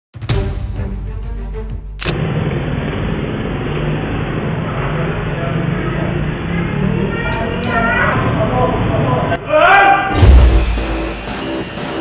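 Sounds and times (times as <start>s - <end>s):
traffic and engine rumble: 2.0s - 9.4s.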